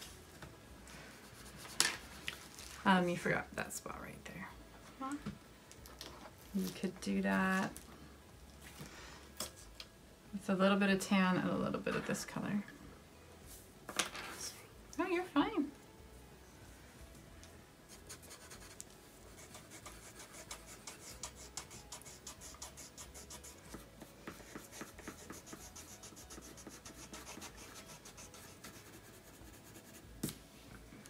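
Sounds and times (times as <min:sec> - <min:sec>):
colored pencils scratching on paper: 0:01.2 - 0:02.2, 0:17.9 - 0:30.1.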